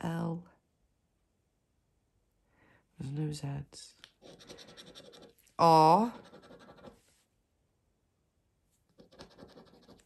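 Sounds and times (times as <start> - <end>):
scratching a scratch card: 4.2 - 5.4, 6.0 - 7.0, 8.9 - 10.0.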